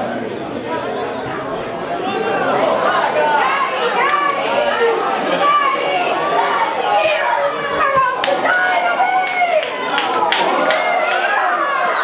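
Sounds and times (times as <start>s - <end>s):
spectators chattering and calling: 0.0s - 12.0s.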